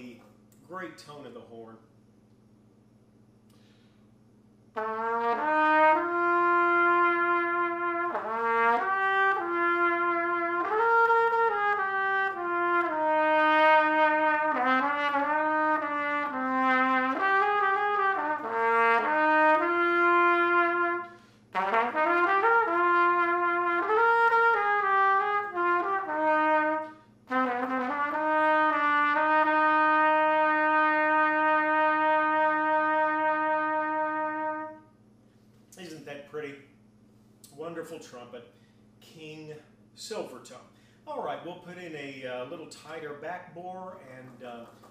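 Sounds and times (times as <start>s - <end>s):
player breathing: 3.5s - 4.1s
trumpet playing slow melody: 4.7s - 35.0s.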